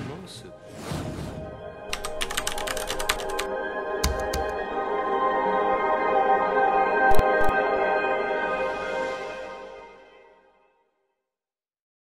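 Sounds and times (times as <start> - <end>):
background music: 0.0 - 11.0
keyboard key clicks: 4.0 - 4.6, 7.1 - 7.5.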